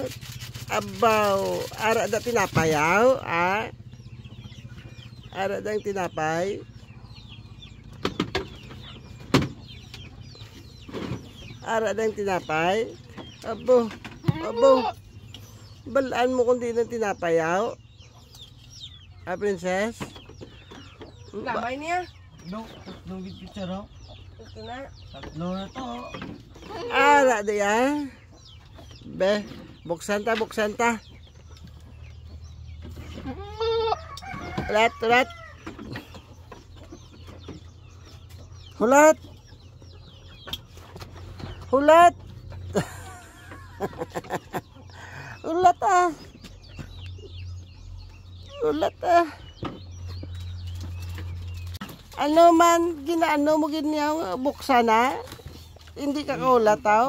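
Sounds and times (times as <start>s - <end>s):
chickens clucking: 0.0s - 57.0s
goat bleating: 14.2s - 15.0s, 33.2s - 34.0s.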